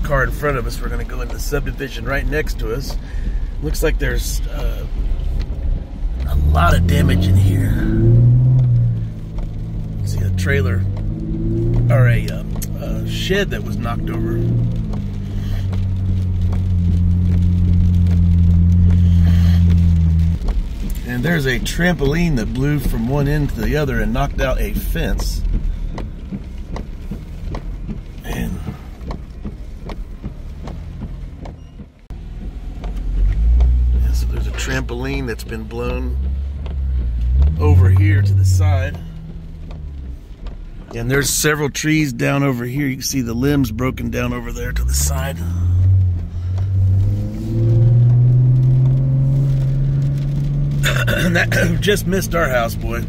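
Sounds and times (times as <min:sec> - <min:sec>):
car engine and road noise: 0:00.0 - 0:53.0
light ticks: 0:00.0 - 0:53.0.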